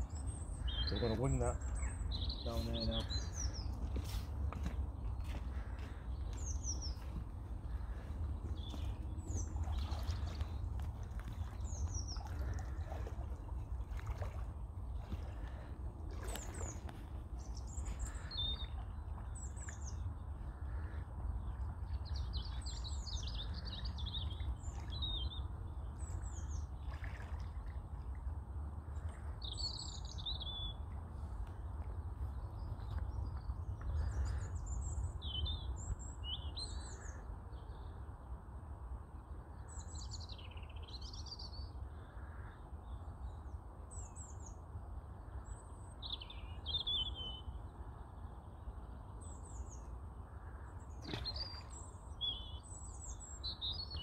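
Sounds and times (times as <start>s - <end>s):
small birds chirping: 0.0s - 14.4s.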